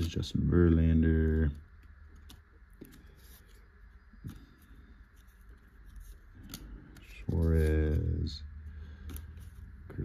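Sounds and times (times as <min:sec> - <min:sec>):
trading cards sliding: 0:01.2 - 0:09.9.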